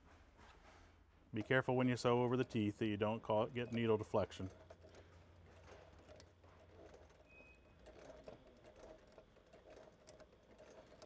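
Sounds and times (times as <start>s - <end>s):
sewing machine ticking: 1.4s - 11.0s.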